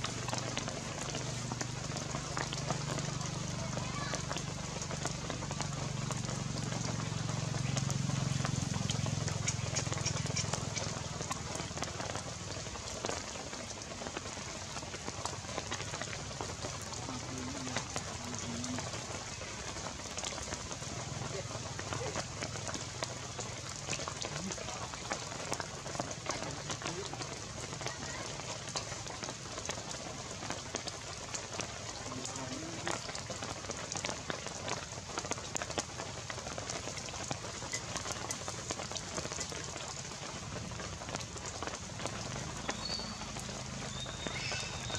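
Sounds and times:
steady outdoor hiss: 0:00.0 - 0:44.9.

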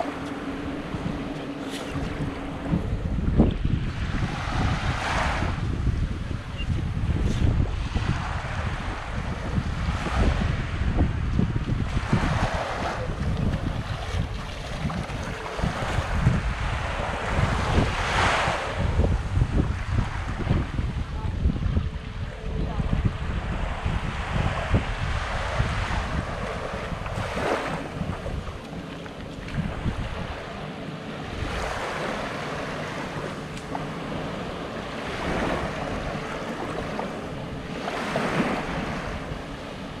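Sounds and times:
small waves washing on sand: 0:00.0 - 0:40.0
wind buffeting microphone: 0:00.0 - 0:40.0.

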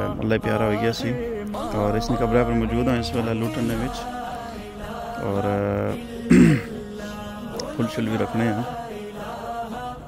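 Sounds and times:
background music: 0:00.0 - 0:10.0
person clearing throat: 0:06.3 - 0:06.8.

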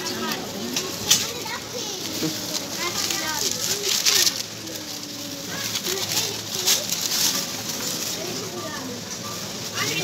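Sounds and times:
shoppers' voices: 0:00.0 - 0:10.0
child's voice: 0:00.2 - 0:07.0, 0:08.2 - 0:09.0.

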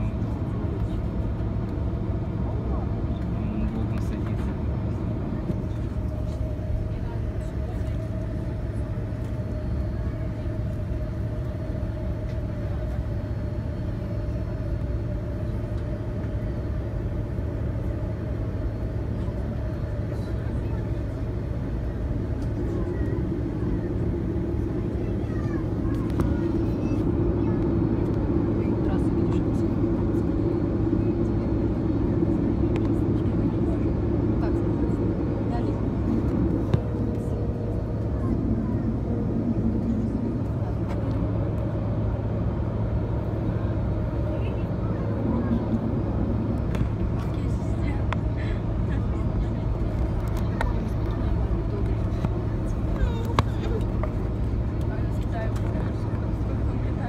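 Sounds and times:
cabin air noise: 0:00.0 - 0:57.0
jet engines humming: 0:00.0 - 0:57.0.

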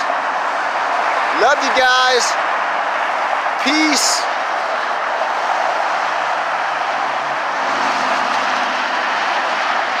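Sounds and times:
freeway traffic noise: 0:00.0 - 0:10.0.

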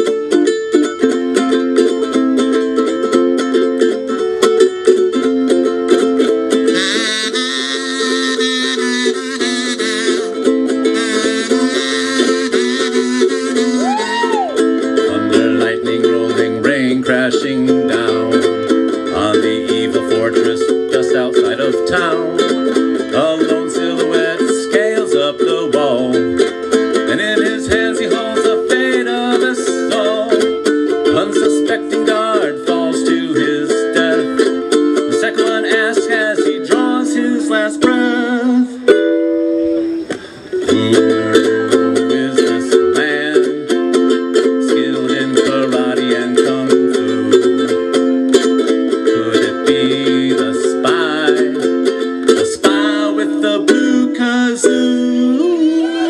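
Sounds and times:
solo ukulele playing: 0:00.0 - 0:56.0.

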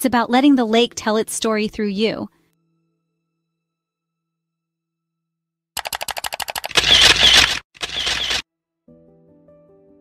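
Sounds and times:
soft music with sustained notes: 0:02.4 - 0:04.6, 0:08.5 - 0:10.0
camera shutter clicks: 0:05.8 - 0:08.4.

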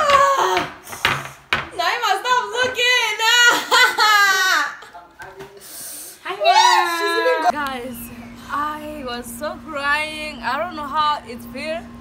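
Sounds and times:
woman's high vocal cry: 0:06.4 - 0:07.5.

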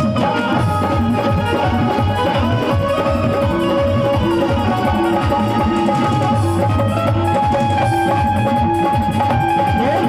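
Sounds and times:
drums beating quick rhythm: 0:00.0 - 0:10.0
keyboard melody: 0:00.0 - 0:10.0.

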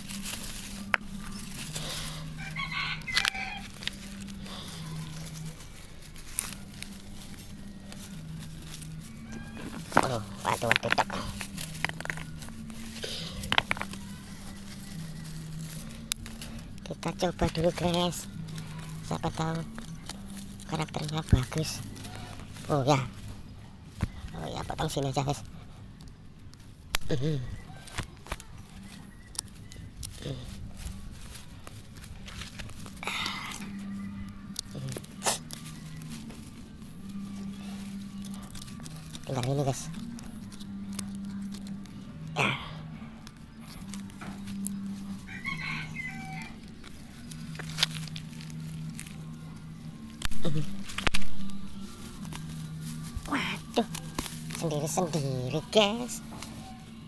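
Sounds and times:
pruning shears snipping: 0:00.0 - 0:23.4
root tearing: 0:00.0 - 0:56.7
leaves and twigs rustling: 0:00.0 - 0:57.0
steady low hum: 0:00.0 - 0:57.0.

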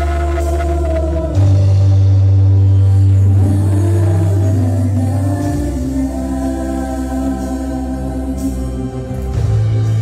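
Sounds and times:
group singing: 0:00.0 - 0:10.0
keyboard: 0:00.0 - 0:10.0.

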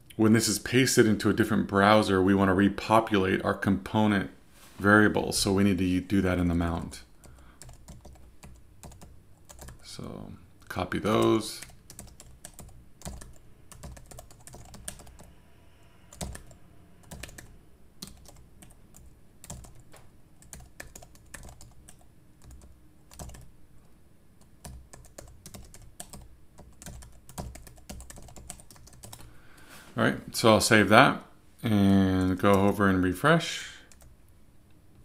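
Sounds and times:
computer keyboard typing: 0:07.2 - 0:09.8, 0:11.2 - 0:15.3, 0:16.1 - 0:23.5, 0:24.4 - 0:29.3, 0:33.9 - 0:34.1.

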